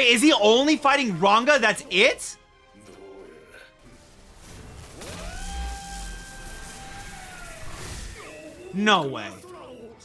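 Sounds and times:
wolf howling: 5.0s - 8.8s.

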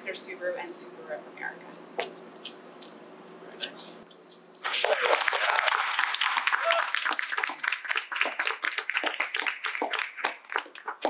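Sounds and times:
small group applauding: 4.6s - 11.0s.

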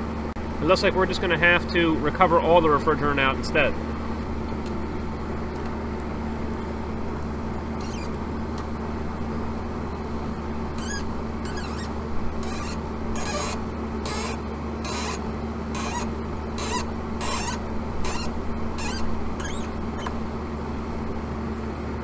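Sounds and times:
running machine hum: 0.0s - 22.0s
brief squeak: 7.8s - 8.2s, 10.8s - 15.2s, 15.8s - 20.2s.

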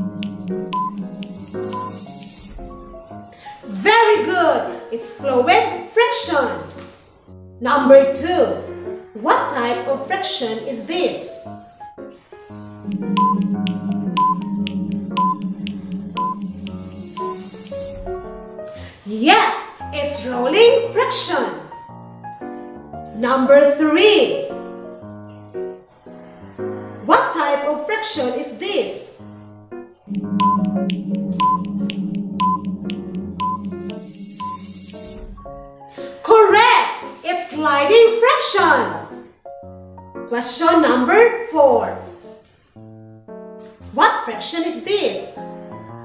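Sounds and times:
rapid ticking: 0.0s - 2.9s, 12.8s - 18.5s, 30.1s - 35.6s
countdown timer music: 0.0s - 3.4s, 12.6s - 18.8s, 30.0s - 35.8s
background music: 0.0s - 46.0s
short high beep: 0.7s - 2.5s, 33.4s - 35.0s
short high beeps: 0.7s - 2.5s, 13.0s - 13.5s, 14.2s - 14.5s, 15.2s - 15.4s, 16.2s - 18.0s, 30.2s - 30.8s, 31.4s - 31.7s, 33.4s - 35.1s.

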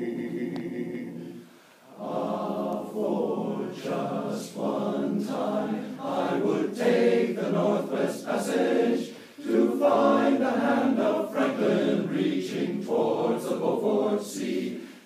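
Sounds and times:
male voice choir singing: 0.0s - 15.0s.

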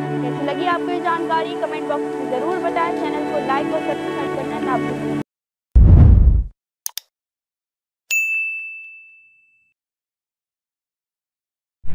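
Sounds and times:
bright bell ding: 8.1s - 9.7s.

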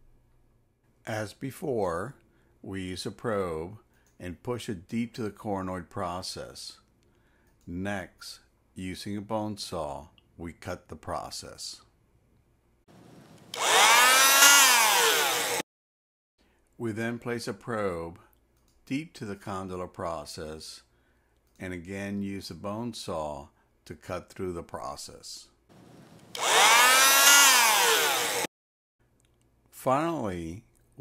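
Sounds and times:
electric bone saw whining buzz: 12.9s - 15.6s, 25.8s - 28.5s.

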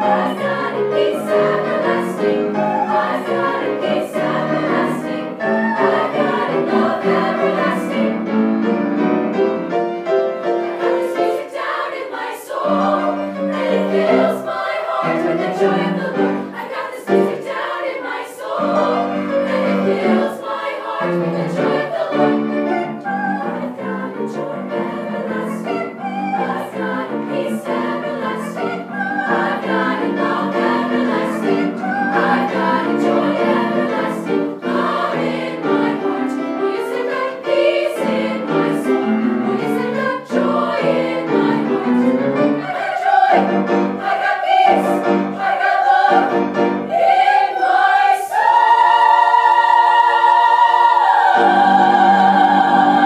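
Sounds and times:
girls' choir singing: 0.0s - 9.3s, 10.3s - 53.0s
piano accompaniment: 0.0s - 53.0s.

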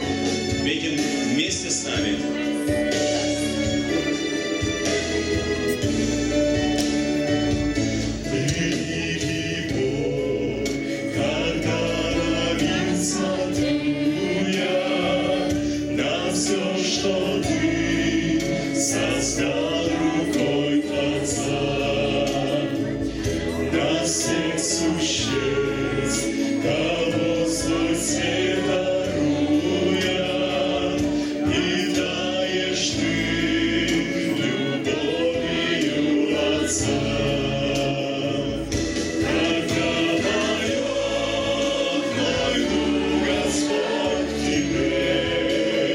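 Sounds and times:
group singing through microphones: 0.0s - 45.9s.

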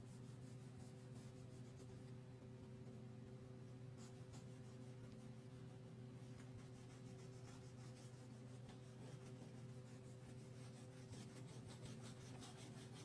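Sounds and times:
steady low hum: 0.0s - 13.0s
crayon scratching on paper: 6.2s - 13.0s.

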